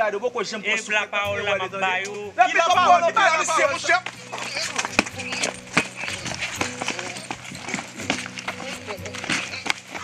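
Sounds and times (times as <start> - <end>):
people shouting: 2.4 - 10.0
people grunting: 2.5 - 10.0
rapid footfalls on paving: 3.8 - 10.0.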